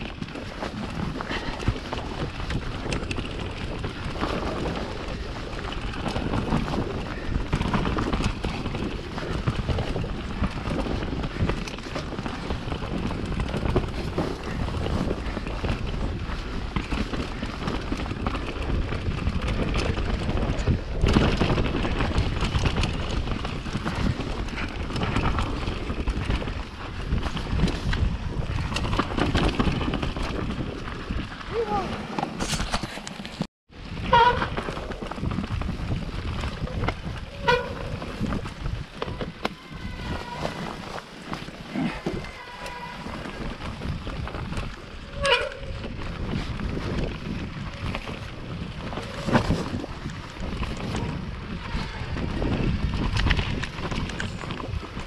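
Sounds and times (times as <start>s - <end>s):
wind buffeting microphone: 0.0s - 33.0s, 33.7s - 55.0s
bike tyres rolling and rattling: 0.0s - 55.0s.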